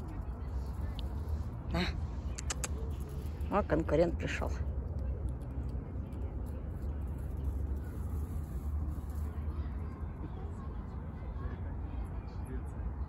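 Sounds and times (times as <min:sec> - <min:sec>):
low outdoor rumble: 0:00.0 - 0:13.0.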